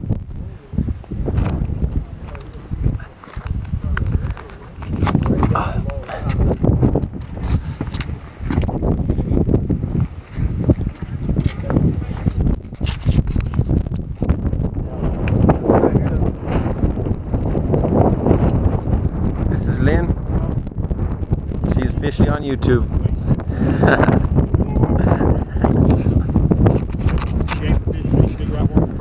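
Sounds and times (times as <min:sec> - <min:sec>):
wind buffeting microphone: 0:00.0 - 0:29.0
indistinct voices: 0:01.8 - 0:07.7.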